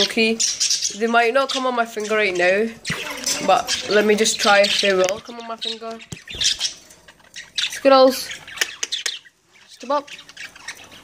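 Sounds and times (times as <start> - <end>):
budgerigars chirping: 0.0 - 11.0.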